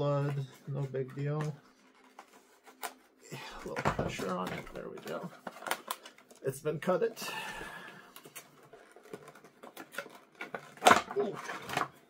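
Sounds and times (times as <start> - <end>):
plastic packaging crinkling and clicking: 3.6 - 6.6, 8.1 - 12.0.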